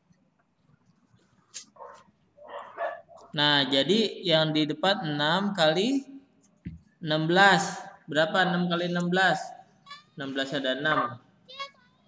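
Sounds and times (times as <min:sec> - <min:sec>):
faint dog barking: 0:01.7 - 0:03.4.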